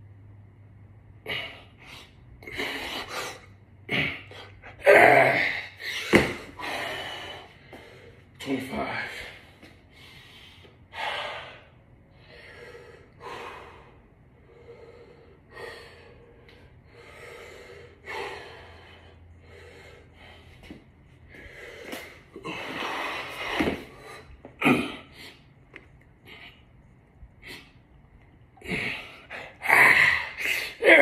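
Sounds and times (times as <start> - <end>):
man breathing hard: 1.2 - 25.5, 28.6 - 30.9.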